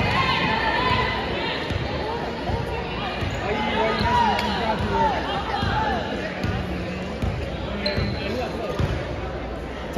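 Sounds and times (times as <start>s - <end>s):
voices in a hall: 0.0s - 9.9s.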